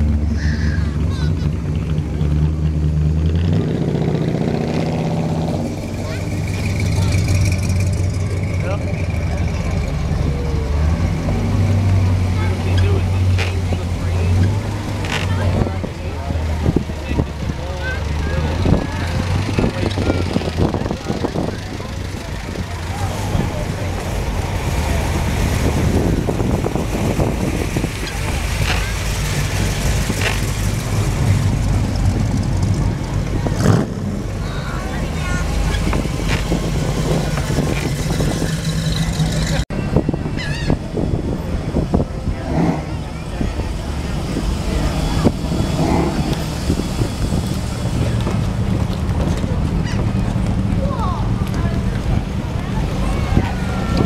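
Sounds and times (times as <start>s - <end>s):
car engines running slowly: 0.0s - 54.0s
crowd talking: 0.0s - 54.0s.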